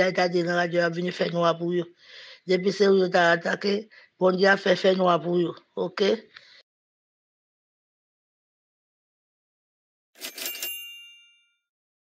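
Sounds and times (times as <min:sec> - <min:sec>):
bell-like ringing tone: 0:10.2 - 0:11.7.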